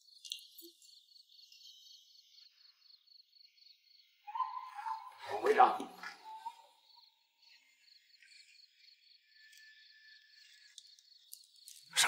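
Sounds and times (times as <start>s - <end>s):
crickets trilling: 0.0s - 5.6s, 6.2s - 12.0s.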